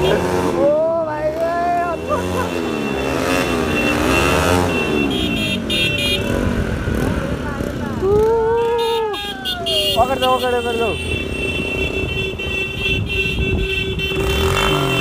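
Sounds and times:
motorcycles running: 0.0 - 15.0
riders shouting and whooping: 8.0 - 10.7.

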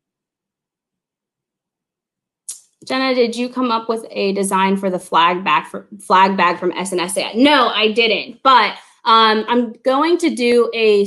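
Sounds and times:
woman speaking: 2.8 - 11.0.

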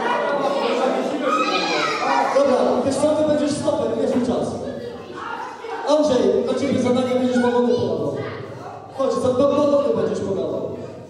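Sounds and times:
children playing and calling out: 0.0 - 3.3, 4.2 - 11.0
adult chatter: 0.0 - 11.0.

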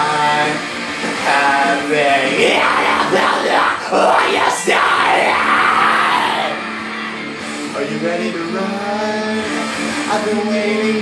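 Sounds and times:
rock band playing: 0.0 - 11.0
man screaming: 2.2 - 6.6.

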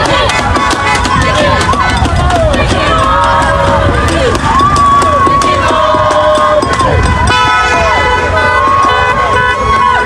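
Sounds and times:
car horns honking: 0.0 - 2.0, 4.7 - 10.0
people shouting: 0.0 - 10.0
slow-moving traffic: 0.0 - 10.0.

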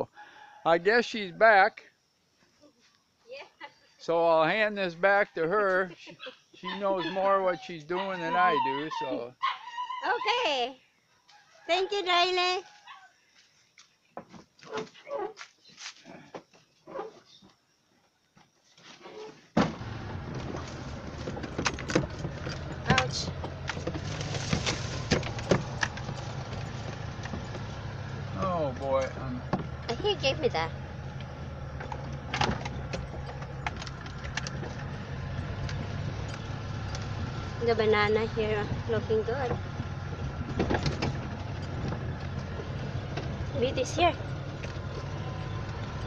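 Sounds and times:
truck engine humming: 19.7 - 46.0.

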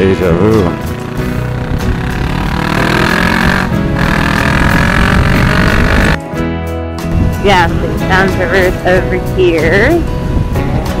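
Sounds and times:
background music: 0.0 - 11.0
motorcycle engine accelerating: 0.7 - 6.2.

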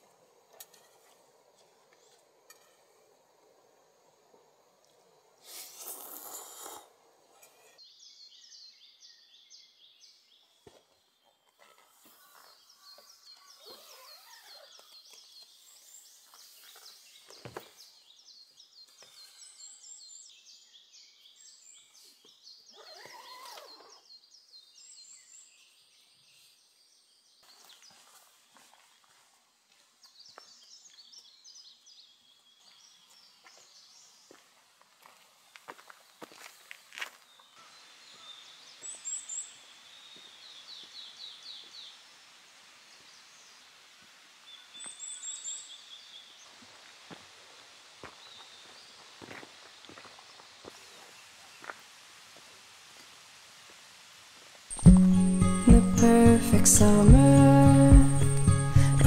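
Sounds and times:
faint outdoor ambience: 0.0 - 59.0
birds chirping and trilling: 11.6 - 22.0, 22.6 - 25.7.

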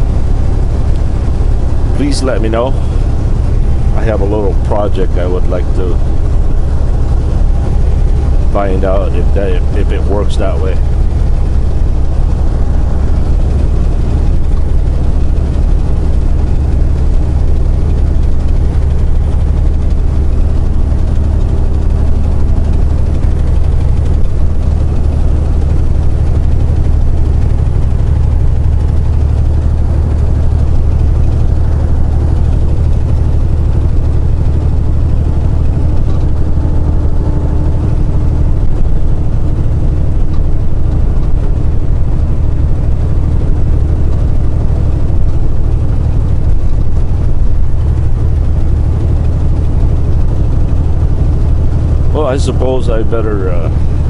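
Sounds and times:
road noise: 0.0 - 54.0
truck diesel engine drone: 0.0 - 54.0.

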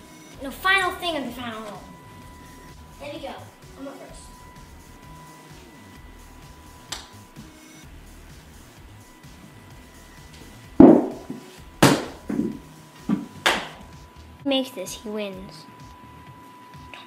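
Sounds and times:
steady high electronic tone: 0.0 - 17.0
putter striking golf ball: 10.8 - 13.7.

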